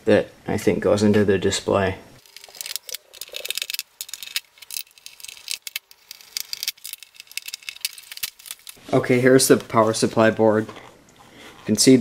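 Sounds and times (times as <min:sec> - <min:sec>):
circuit board clicking and rattling: 0:02.2 - 0:08.8.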